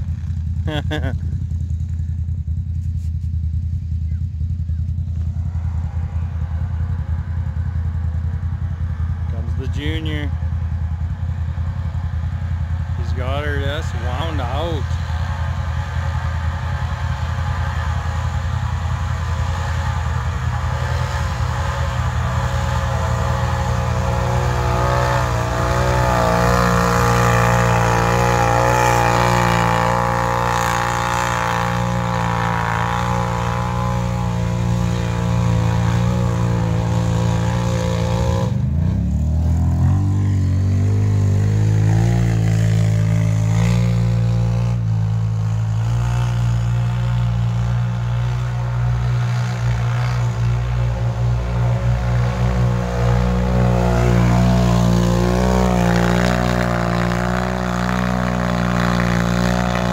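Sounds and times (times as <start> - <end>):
atv engines revving: 0.0 - 59.9.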